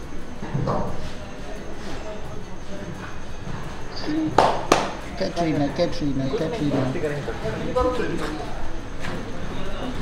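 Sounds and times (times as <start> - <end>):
faint indistinct voices: 0.0 - 10.0
low background noise: 0.0 - 10.0.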